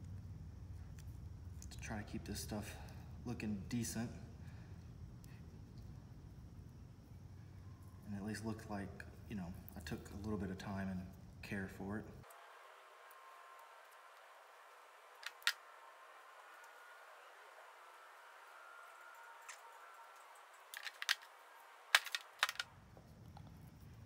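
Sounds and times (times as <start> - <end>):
tape clicks and taps: 15.2 - 15.6, 22.0 - 22.7
tape rustling: 15.2 - 15.6, 19.4 - 22.7.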